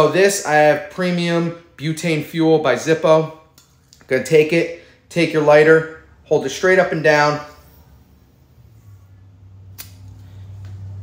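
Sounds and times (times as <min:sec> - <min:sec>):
lighter clicks: 0:09.7 - 0:10.2.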